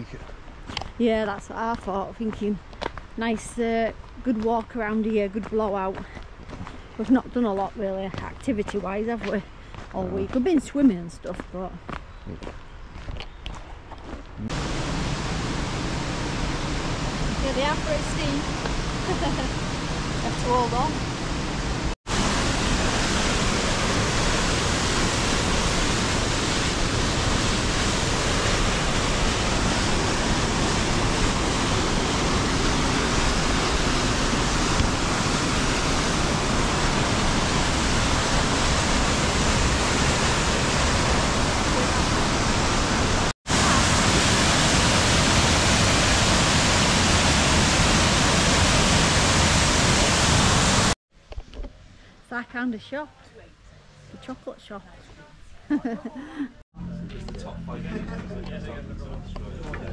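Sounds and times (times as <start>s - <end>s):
waterfall rushing: 14.5s - 51.0s.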